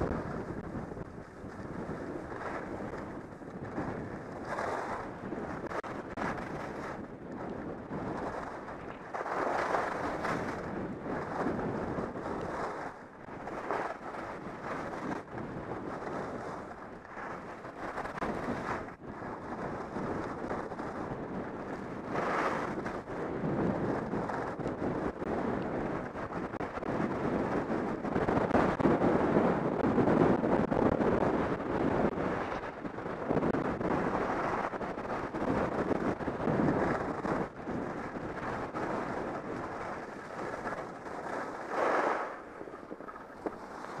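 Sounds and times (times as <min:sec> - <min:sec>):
wind rushing over microphone: 0:00.0 - 0:44.0
skis scraping on packed snow: 0:09.1 - 0:10.5, 0:41.3 - 0:42.5, 0:43.4 - 0:44.0.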